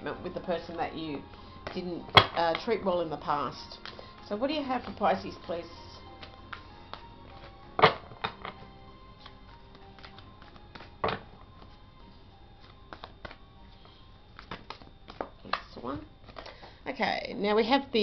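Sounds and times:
cards being shuffled: 8.2s - 11.7s, 14.4s - 16.5s.

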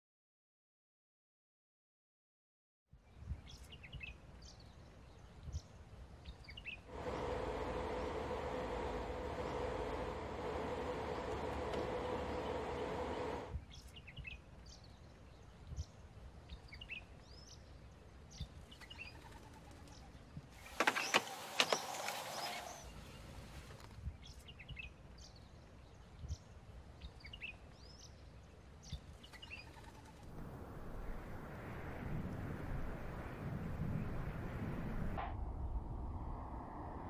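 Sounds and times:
birds chirping: 3.5s - 30.3s
steady two-tone hum: 6.9s - 13.5s.

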